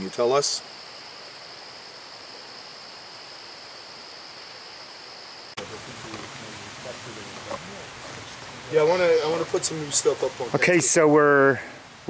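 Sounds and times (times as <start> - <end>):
background hiss: 0.0 - 12.0
crickets trilling: 0.0 - 12.0
faint voices: 5.6 - 11.8.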